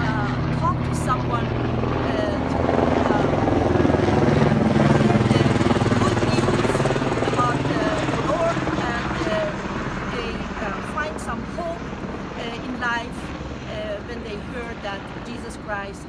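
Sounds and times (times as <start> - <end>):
helicopter passing overhead: 0.0 - 16.0.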